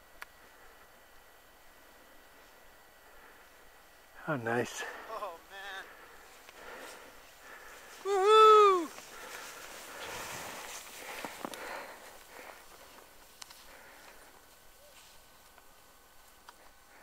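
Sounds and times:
skis hissing through snow: 4.4 - 17.0
person whooping: 5.1 - 5.9, 8.0 - 9.0.

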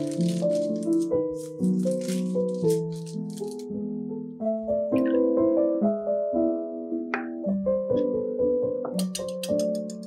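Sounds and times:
parchment paper crinkling: 0.0 - 3.8
instrumental background music: 0.0 - 10.0.

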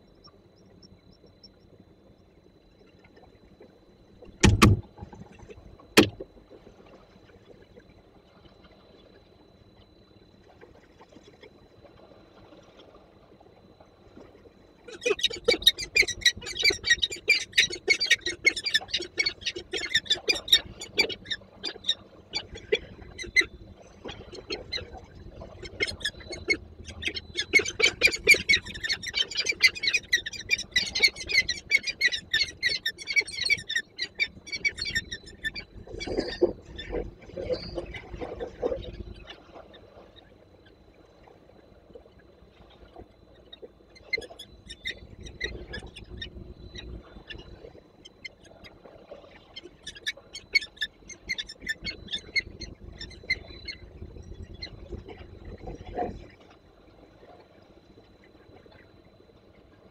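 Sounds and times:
single knock: 4.4 - 4.8.

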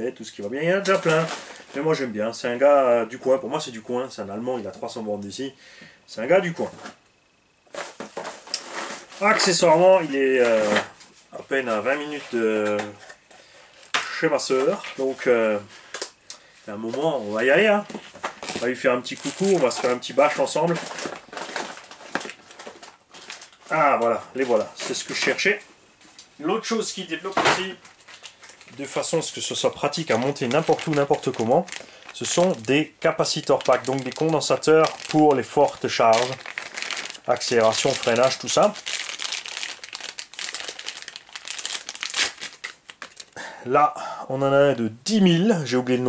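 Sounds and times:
rummaging through small items: 0.8 - 1.8, 17.6 - 25.5, 27.2 - 43.4
plastic bag crinkling: 0.8 - 2.0, 17.3 - 25.6, 27.0 - 43.4.

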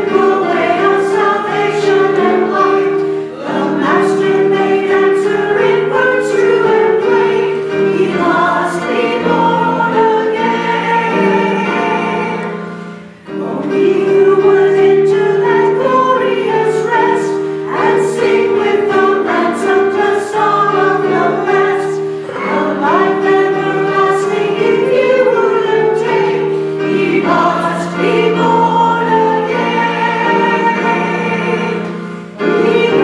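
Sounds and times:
choir singing in parts: 0.0 - 33.0.

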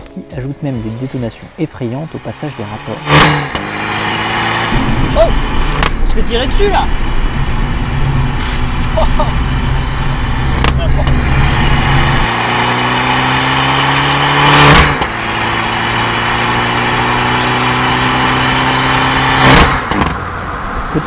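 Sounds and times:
car engine accelerating hard: 2.1 - 21.0
exhaust crack: 2.4 - 21.0.

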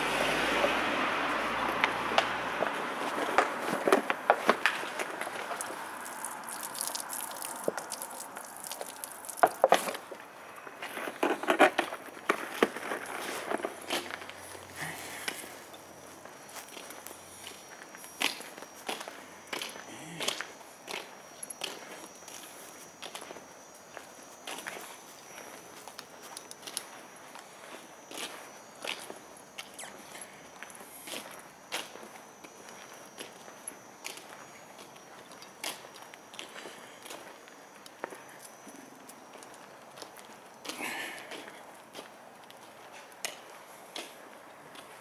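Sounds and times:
footsteps on asphalt: 0.1 - 45.0.

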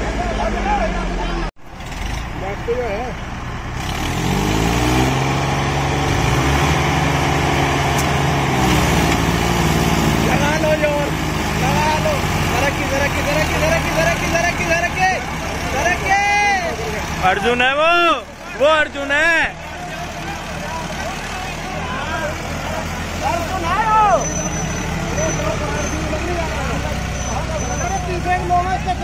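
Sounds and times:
diesel tractors revving under load: 0.0 - 29.0
men shouting: 10.2 - 29.0.

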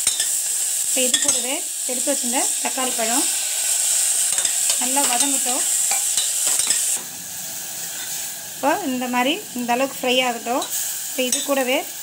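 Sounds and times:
vegetables sizzling in hot oil: 0.0 - 12.0.

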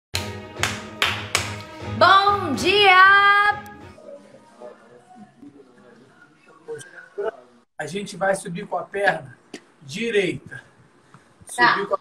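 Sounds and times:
sharp hand claps: 0.2 - 1.8
background music with held tones: 0.2 - 4.2.

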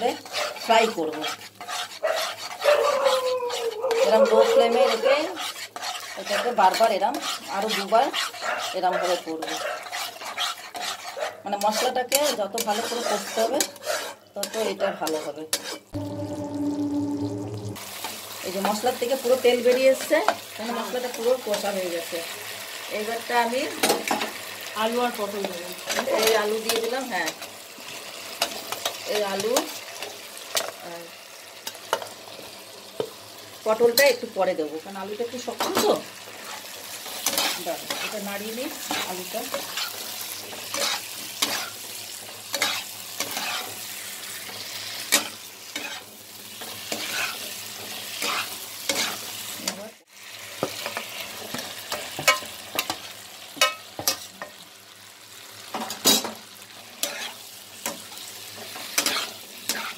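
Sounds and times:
metal spatula scraping pan: 0.0 - 21.7, 35.4 - 49.8, 50.7 - 54.6, 55.8 - 59.9
oil frying sizzle: 0.0 - 59.9.

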